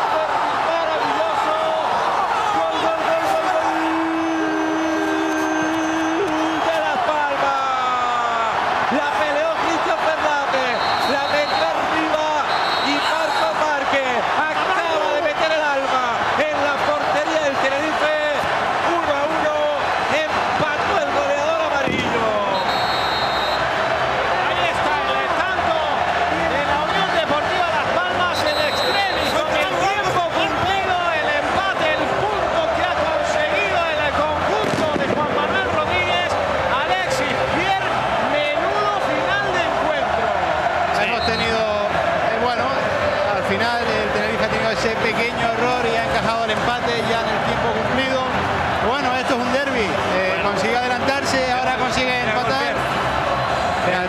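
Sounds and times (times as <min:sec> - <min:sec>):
stadium crowd cheering and singing: 0:00.0 - 0:54.0.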